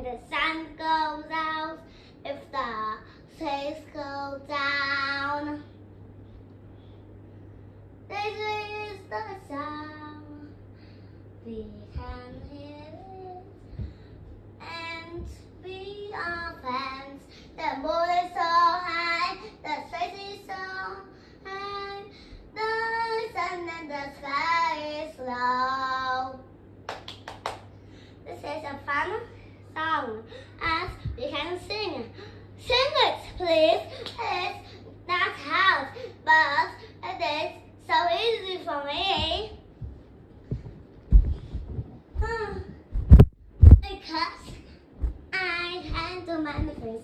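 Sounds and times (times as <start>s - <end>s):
faint low hum: 0.0s - 47.0s
child singing unaccompanied: 11.4s - 13.6s, 14.6s - 26.5s, 45.3s - 47.0s.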